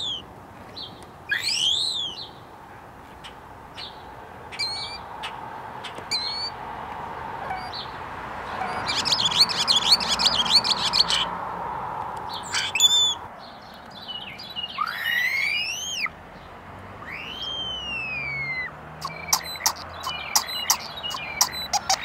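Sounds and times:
bird whistle rising and falling: 0.0 - 0.2, 1.3 - 2.3, 6.1 - 6.6, 8.6 - 11.3, 12.5 - 13.2, 14.8 - 16.1, 17.0 - 22.0
sharp bird calls: 0.0 - 6.6, 7.3 - 11.4, 12.2 - 22.0
starling chattering warble: 8.5 - 11.3, 12.5 - 13.2, 18.5 - 22.0.

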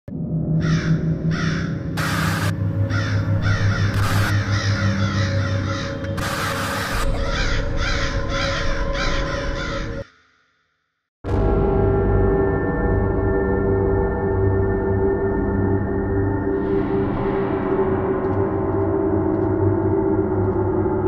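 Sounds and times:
low droning music: 0.1 - 10.1, 11.2 - 21.0
crows cawing: 0.6 - 10.5.

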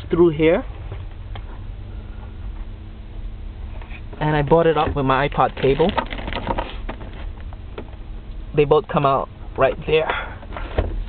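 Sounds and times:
steady low rumble: 0.0 - 11.0
small clicks and rustles: 5.3 - 8.0.

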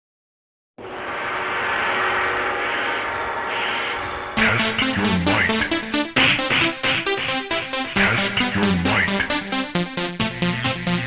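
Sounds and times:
sustained ringing tones: 0.8 - 5.9.

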